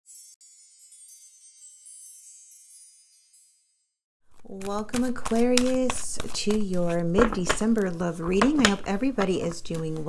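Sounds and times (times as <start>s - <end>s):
high-pitched chimes ringing: 0.1s - 4.0s.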